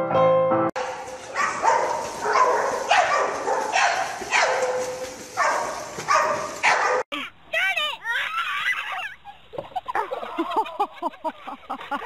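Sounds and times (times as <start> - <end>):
dog barking: 0.8 - 7.0.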